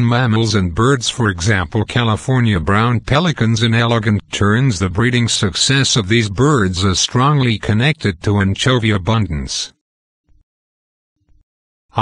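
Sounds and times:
synthesized voice speaking: 0.0 - 9.8.

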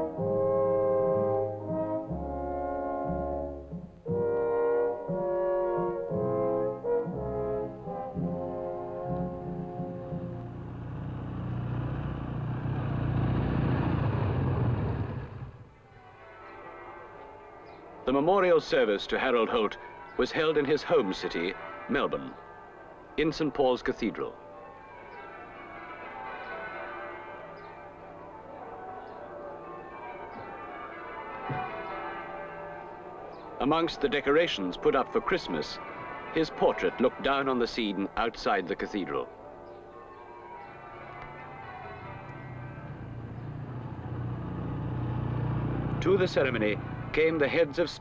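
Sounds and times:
motorcycles and cars driving past: 9.4 - 15.8, 41.0 - 48.0
church bells ringing a peal: 15.8 - 44.1.

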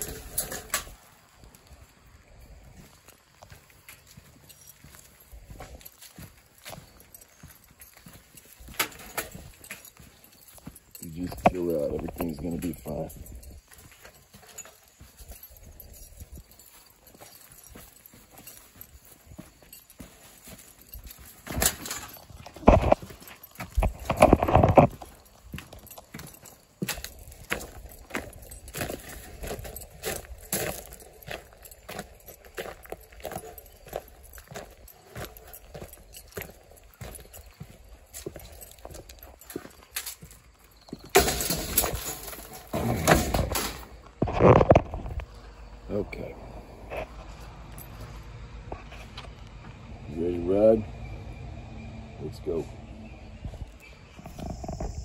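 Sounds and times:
wire trap rattling and clanking: 0.0 - 1.1, 2.8 - 45.2
footsteps on dry leaves: 0.0 - 40.6.

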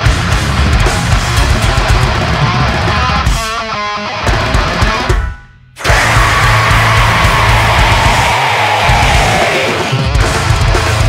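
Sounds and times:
heavy metal band: 0.0 - 11.0.

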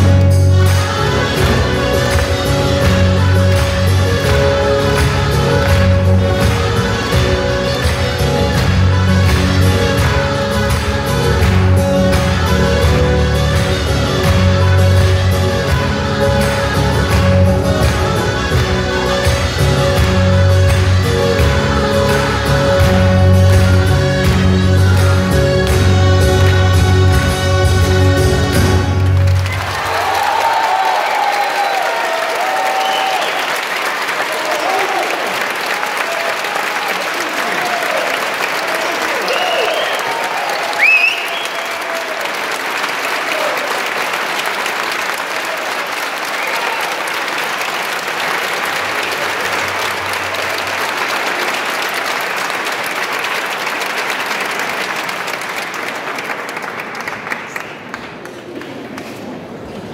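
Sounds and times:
audience applause with cheers: 0.0 - 27.2, 28.8 - 59.9
dulzainas and drums playing: 0.0 - 29.4.

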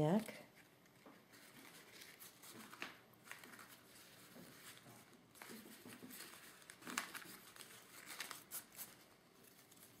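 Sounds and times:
ribbon and cloth rustling: 0.0 - 10.0.

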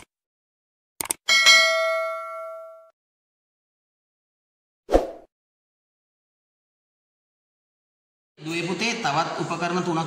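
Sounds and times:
notification bell ding: 1.3 - 2.9.

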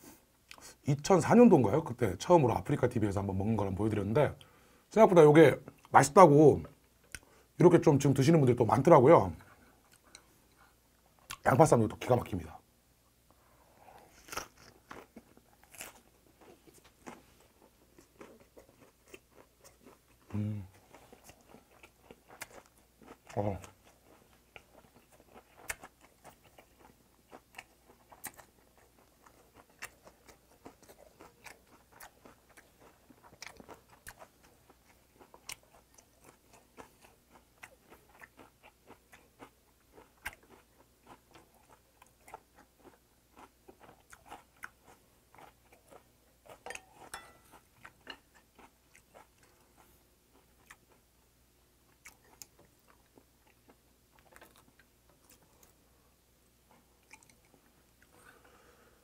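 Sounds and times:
person chewing wetly: 14.1 - 51.0, 51.9 - 55.8, 56.7 - 58.2.

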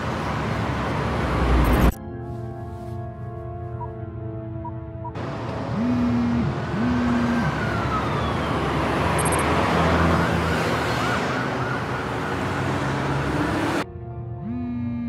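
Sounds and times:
street traffic noise: 0.0 - 4.0, 4.6 - 15.0
emergency vehicle siren: 5.1 - 15.0.

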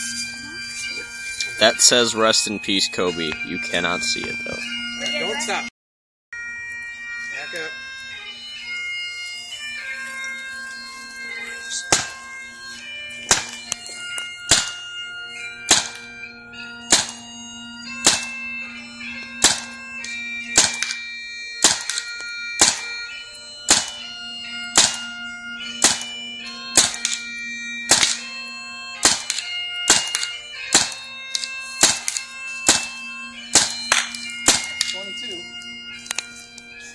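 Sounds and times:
bagpipe music: 0.0 - 5.7, 6.4 - 36.9
paintball marker shots: 13.3 - 13.6, 14.5 - 14.8, 15.7 - 16.0, 16.9 - 17.2, 18.0 - 18.3, 19.4 - 19.7, 20.6 - 21.0, 21.6 - 22.8, 23.7 - 24.0, 24.8 - 25.0, 25.8 - 26.1, 26.8 - 27.2, 27.9 - 28.2, 29.0 - 32.9, 33.5 - 34.9.

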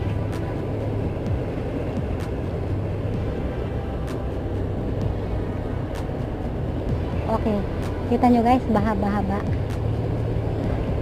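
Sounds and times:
car engine and road hum: 0.0 - 11.0.

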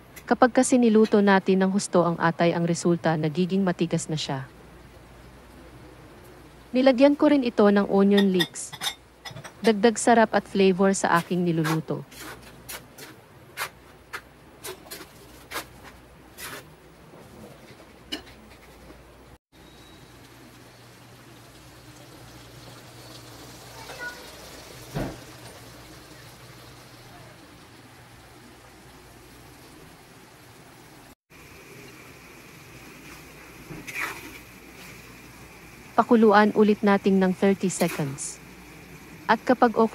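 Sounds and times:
stew simmering and bubbling: 10.9 - 39.9
spatula scraping pan: 33.0 - 34.9.

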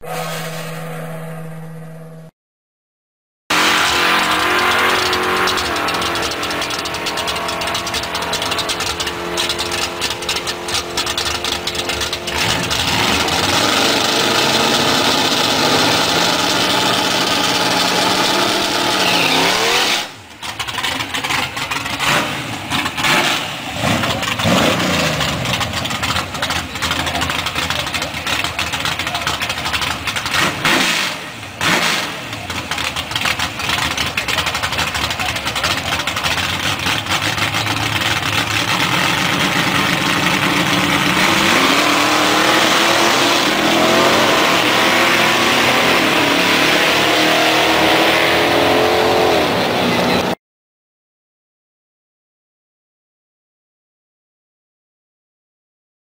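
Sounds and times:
car engine revving: 3.5 - 50.4
tyres spinning on pavement: 3.8 - 19.1, 20.0 - 30.6, 31.3 - 46.5.

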